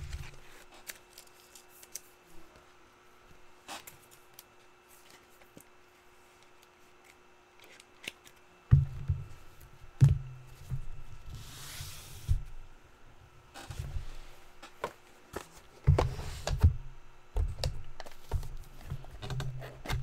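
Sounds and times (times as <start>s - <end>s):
cards rustling and scraping: 0.0s - 2.5s, 3.6s - 8.5s.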